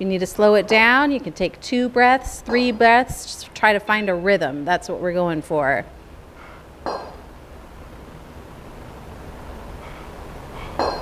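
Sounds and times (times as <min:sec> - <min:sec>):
low room hum: 0:00.0 - 0:11.0
kettlebells clinking: 0:10.8 - 0:11.0.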